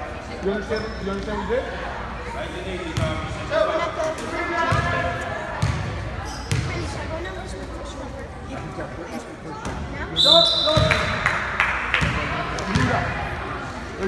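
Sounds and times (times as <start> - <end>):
voices chattering: 0.0 - 14.0.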